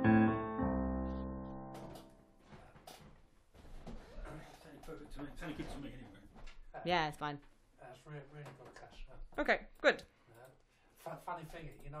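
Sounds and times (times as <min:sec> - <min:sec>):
piano chords: 0:00.0 - 0:02.5.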